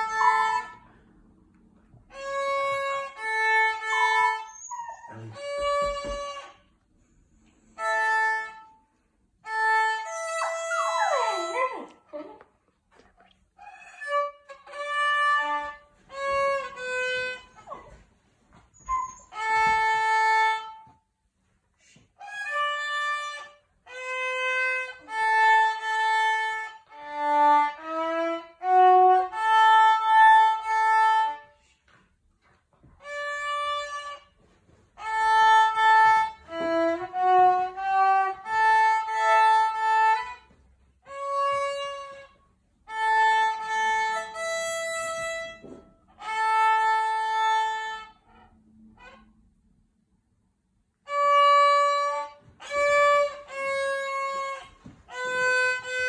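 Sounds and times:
solo violin melody: 0.0s - 0.9s, 2.1s - 6.7s, 7.8s - 8.8s, 9.4s - 11.5s, 13.7s - 17.8s, 19.3s - 21.0s, 22.2s - 31.6s, 32.9s - 34.4s, 35.0s - 49.4s, 51.0s - 56.0s.

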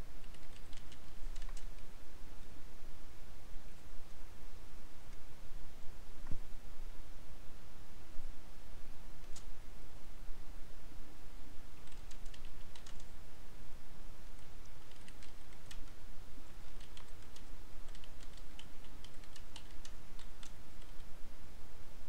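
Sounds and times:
low steady hum: 0.0s - 22.0s
typing on keyboard: 0.2s - 1.9s, 11.8s - 13.2s, 14.3s - 21.1s.

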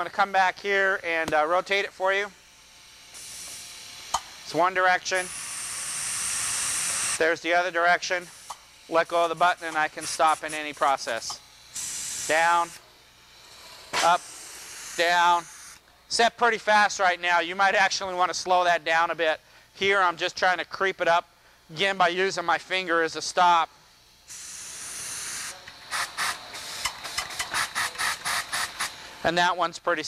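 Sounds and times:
compressed air hissing: 3.0s - 7.3s, 8.1s - 15.8s, 24.2s - 29.3s
short air puffs: 23.7s - 29.3s.

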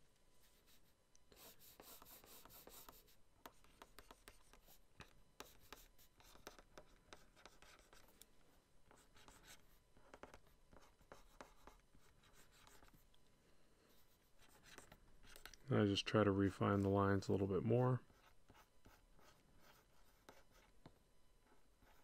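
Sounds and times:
stylus scratching on tablet: 0.4s - 8.2s, 8.9s - 13.0s, 13.9s - 22.0s.

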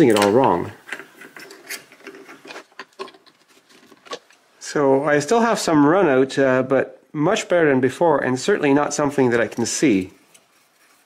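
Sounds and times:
metal clicks and rubbing: 0.0s - 4.4s, 9.4s - 11.0s.

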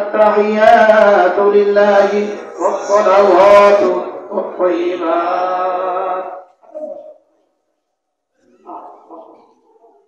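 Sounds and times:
man speaking over public address: 0.0s - 5.4s.

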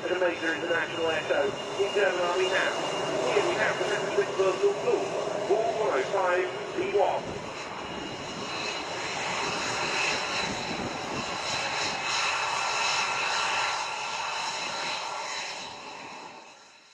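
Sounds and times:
jet engine roar with whine: 0.0s - 16.9s.

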